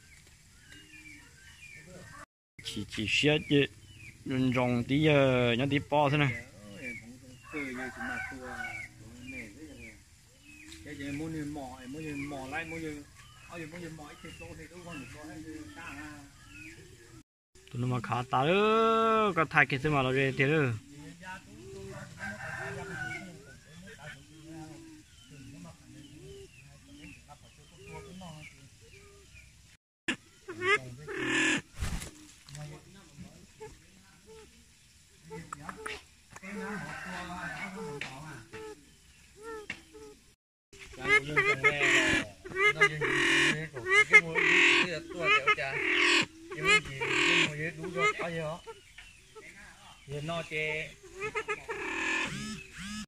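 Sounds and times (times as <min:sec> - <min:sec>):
pheasant calling: 0:00.0 - 0:53.0.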